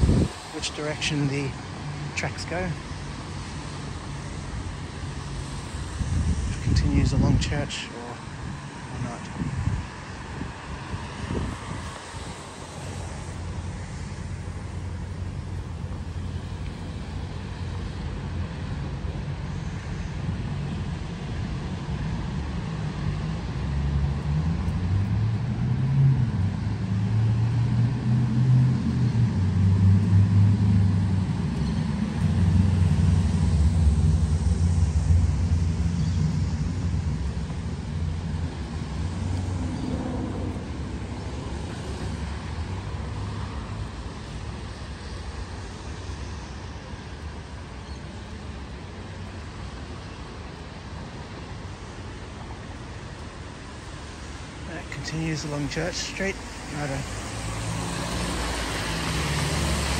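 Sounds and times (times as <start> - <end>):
vehicle engine rumble: 0.0 - 59.9.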